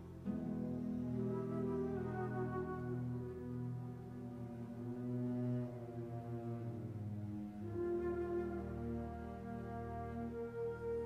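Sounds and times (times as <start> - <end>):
slow orchestral music: 0.0 - 11.0.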